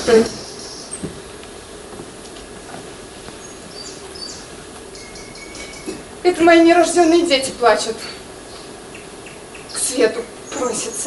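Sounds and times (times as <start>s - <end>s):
background hiss: 0.0s - 11.0s
faint high chirps: 3.4s - 6.0s.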